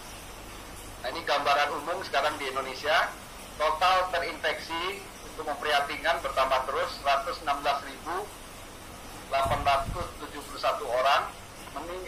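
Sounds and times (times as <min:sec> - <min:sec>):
man speaking through loudspeaker: 0:01.0 - 0:08.3, 0:09.3 - 0:12.0.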